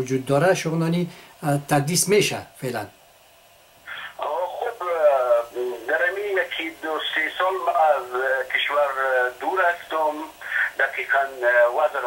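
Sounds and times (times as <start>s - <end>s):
person speaking over telephone: 3.9s - 12.0s.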